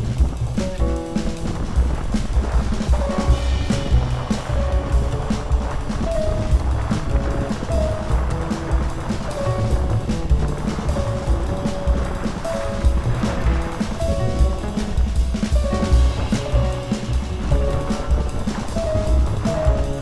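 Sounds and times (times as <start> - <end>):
music with pulsing bass beat: 0.0 - 20.0.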